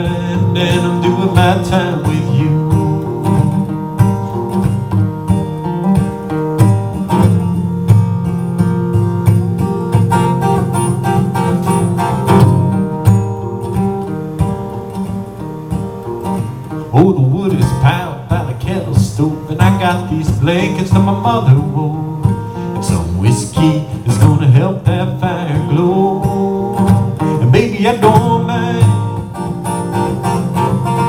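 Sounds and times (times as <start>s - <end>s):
person singing: 0.0s - 4.3s, 16.9s - 29.2s
acoustic guitar chords: 0.0s - 31.0s.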